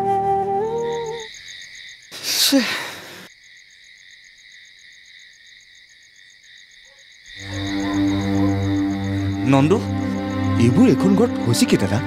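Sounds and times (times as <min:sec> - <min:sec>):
night insects chirring: 0:00.0 - 0:12.0
low background music drone: 0:07.5 - 0:12.0.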